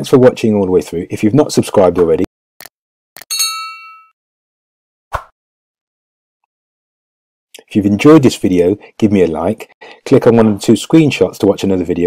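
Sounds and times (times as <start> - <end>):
bright bell-like ding: 3.3 - 4.1.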